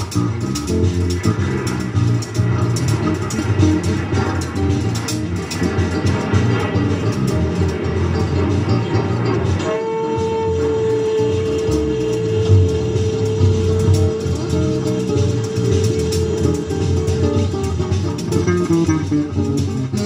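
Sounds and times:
jazz band playing: 0.0 - 20.0
saxophone long note: 8.8 - 18.2.

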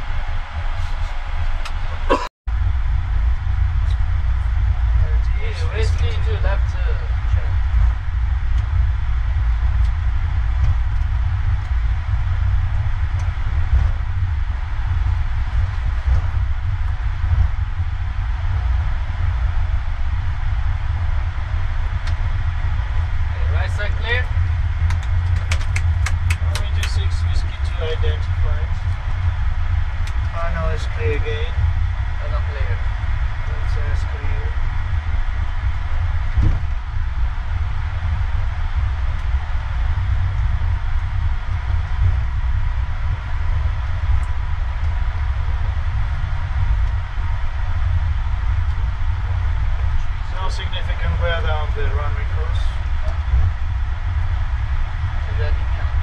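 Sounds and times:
airplane engine low rumble: 0.0 - 56.0
faint voices: 5.0 - 7.6, 23.3 - 24.3, 26.2 - 28.9.

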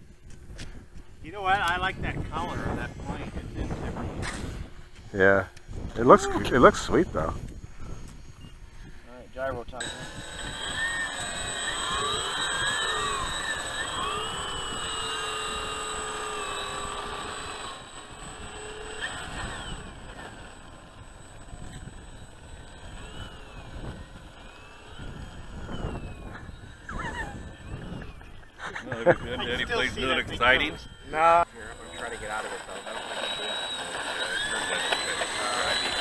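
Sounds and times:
model airplane motors and propellers: 0.0 - 36.0.

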